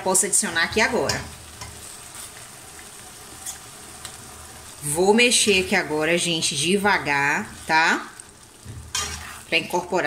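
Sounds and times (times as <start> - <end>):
sauce sizzling and bubbling: 0.0 - 10.0.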